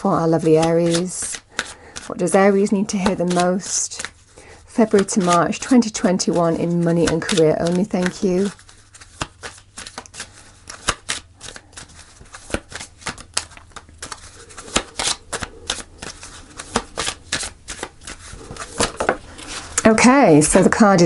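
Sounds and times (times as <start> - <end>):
cards being shuffled: 0.2 - 20.0.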